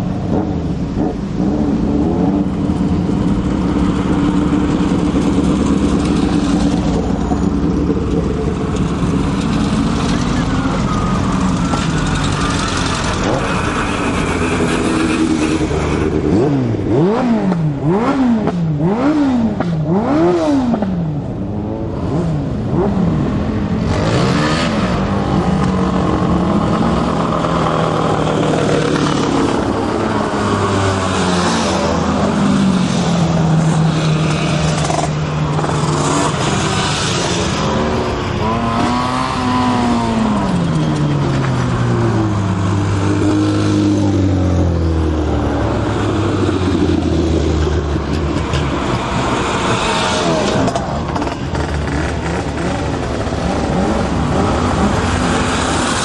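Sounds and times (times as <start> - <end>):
small engines revving high: 3.7 - 21.1, 22.1 - 56.0.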